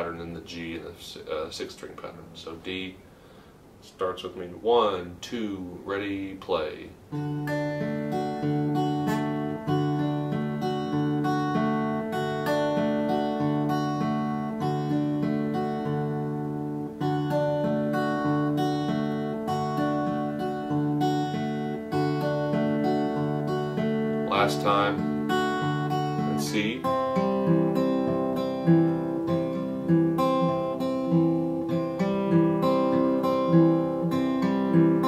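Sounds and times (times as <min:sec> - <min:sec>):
fingerpicked acoustic guitar: 0:06.2 - 0:35.0.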